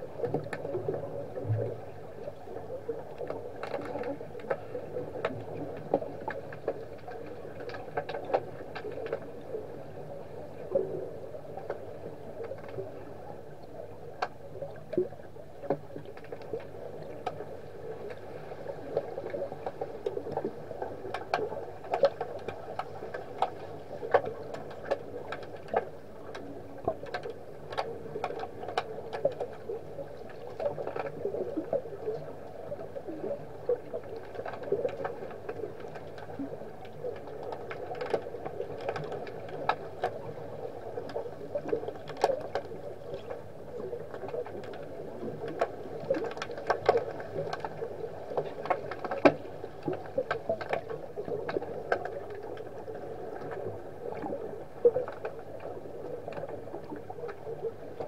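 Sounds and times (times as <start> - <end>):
muffled underwater rush: 0.0 - 58.0.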